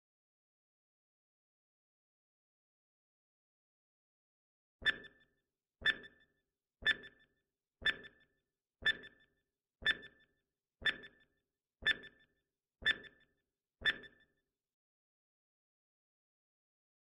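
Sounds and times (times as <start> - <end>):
countdown timer ticks: 4.8 - 14.3.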